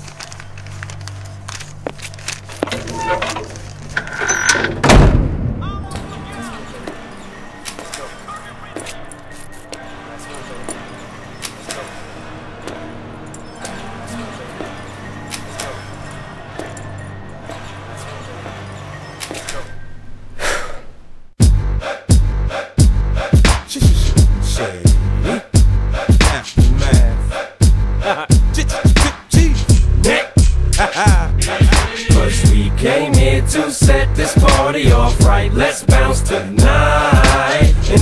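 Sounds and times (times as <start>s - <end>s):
heavy thud: 4.7s - 5.7s
music beat: 21.4s - 38.0s.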